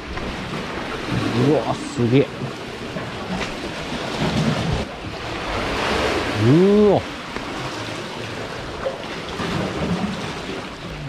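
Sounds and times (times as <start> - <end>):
sea water surging in rocks: 0.0 - 11.0.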